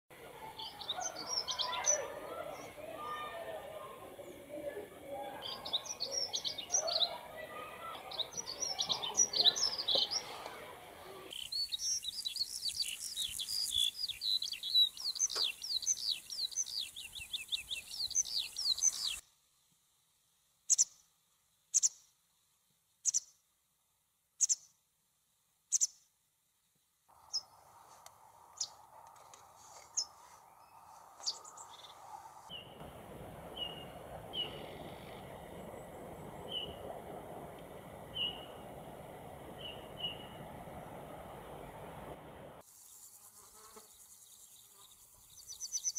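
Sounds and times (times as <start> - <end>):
birds chirping: 0.2 - 19.2, 28.4 - 42.6
faint steady hum: 32.2 - 42.6.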